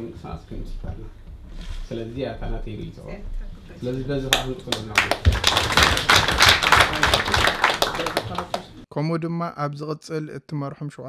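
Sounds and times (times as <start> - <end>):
audience clapping: 4.3 - 8.8.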